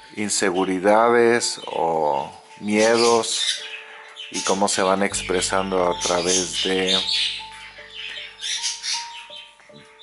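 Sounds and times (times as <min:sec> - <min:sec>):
birds chirping: 0:00.0 - 0:10.0
soft music of long held notes: 0:00.0 - 0:10.0.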